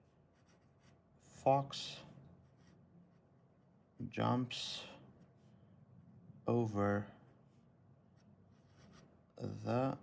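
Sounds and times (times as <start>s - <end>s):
fountain pen scratching on paper: 0.3s - 1.0s, 8.2s - 9.2s.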